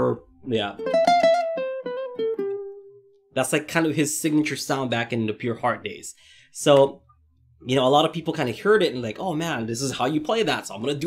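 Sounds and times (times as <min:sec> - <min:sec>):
plucked ukulele notes: 0:00.4 - 0:03.0.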